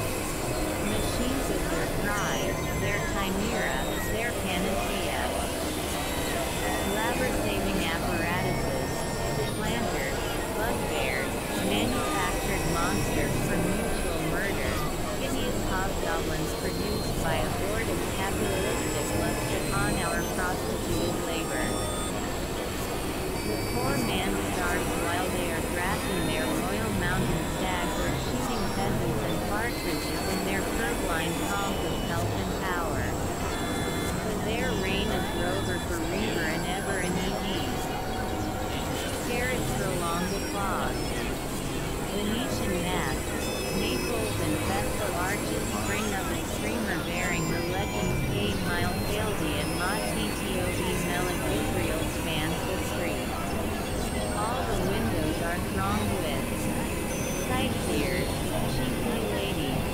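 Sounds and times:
chirping pitch glides: 0:00.0 - 0:59.9
indistinct voices: 0:00.0 - 0:59.9
synthesizer drones and noise: 0:00.0 - 0:59.9.

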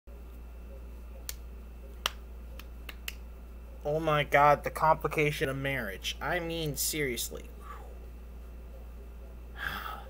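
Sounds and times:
man talking: 0:03.8 - 0:07.6.

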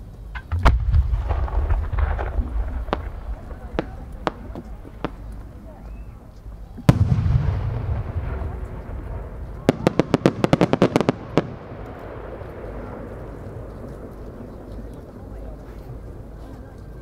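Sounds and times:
rapid firework cracks: 0:00.4 - 0:05.7, 0:06.8 - 0:14.3
low rumbling echo: 0:00.4 - 0:17.0.

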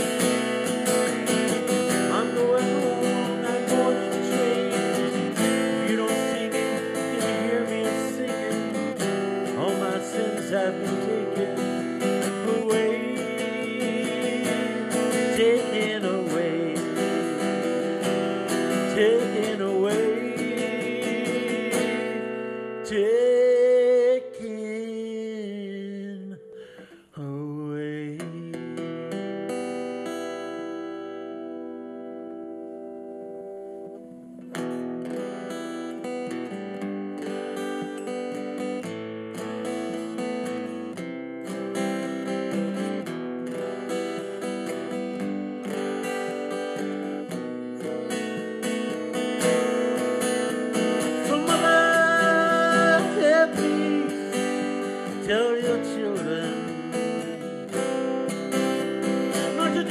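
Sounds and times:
acoustic guitar chords: 0:00.0 - 0:59.9.

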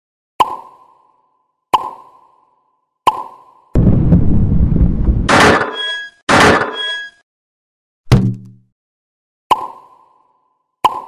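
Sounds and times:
low rumbling noise: 0:03.8 - 0:05.3.

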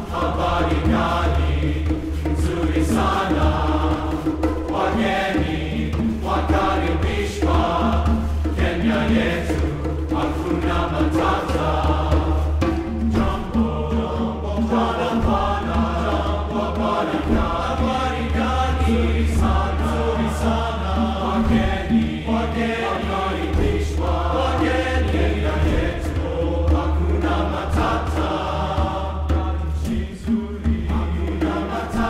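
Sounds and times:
men's chorus singing: 0:00.0 - 0:32.0.

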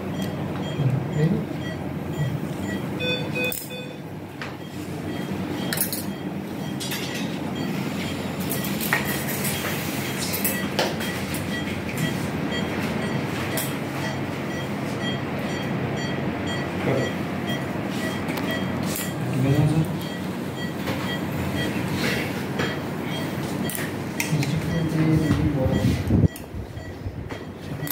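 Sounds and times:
equipment hum: 0:00.0 - 0:27.9.

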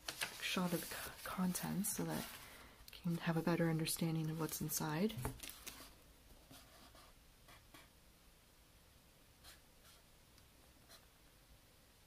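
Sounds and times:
book pages rustling: 0:00.0 - 0:03.3, 0:04.2 - 0:06.0.

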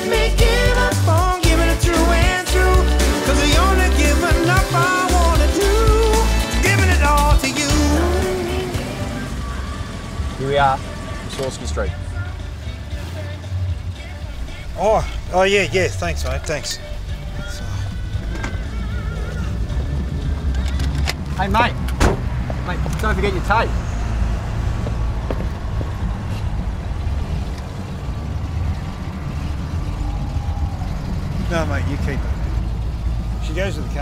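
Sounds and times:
car engine idling: 0:00.0 - 0:34.0.

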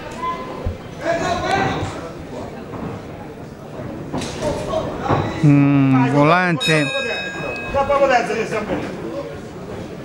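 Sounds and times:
boxing ring bell: 0:06.6 - 0:08.5.

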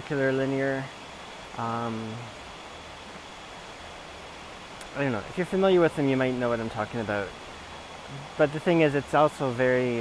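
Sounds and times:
outdoor background hiss: 0:00.0 - 0:10.0
person saying um: 0:08.1 - 0:08.4.

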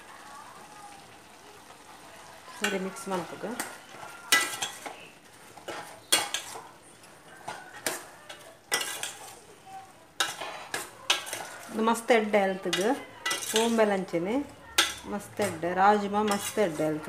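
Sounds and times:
faint sizzle: 0:00.0 - 0:17.0
ladle scraping metal pot: 0:02.6 - 0:09.5, 0:10.2 - 0:12.0, 0:12.6 - 0:13.9, 0:14.8 - 0:17.0.

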